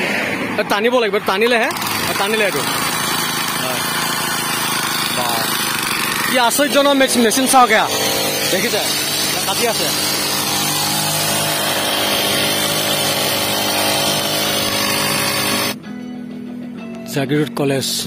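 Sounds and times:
brush cutter cutting grass: 1.4 - 15.8.

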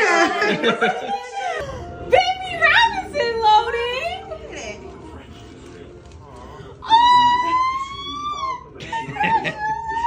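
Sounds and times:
woman screaming: 6.8 - 8.6.

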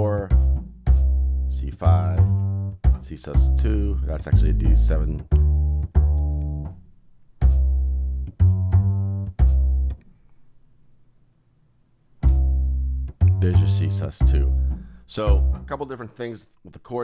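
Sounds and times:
plucked upright bass notes: 0.0 - 10.0, 12.2 - 15.9.

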